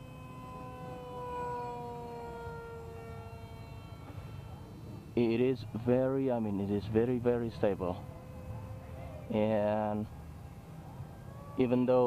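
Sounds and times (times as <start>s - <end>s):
electric motor and propeller whining: 0.0s - 12.0s.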